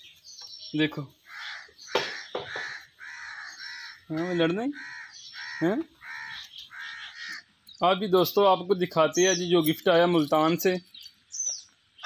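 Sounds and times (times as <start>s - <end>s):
crows cawing: 1.2s - 7.6s.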